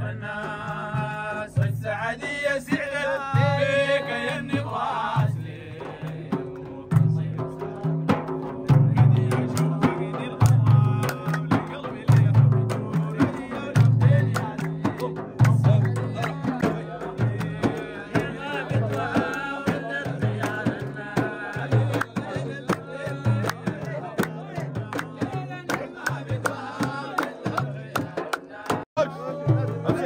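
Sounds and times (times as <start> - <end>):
frame drums beating: 0.0 - 30.0
men singing: 0.0 - 30.0
hand clapping: 9.2 - 20.8, 21.5 - 28.9.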